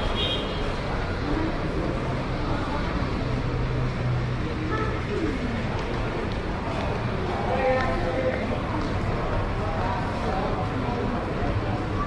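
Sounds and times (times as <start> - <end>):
terminal hall hubbub: 0.0 - 12.0.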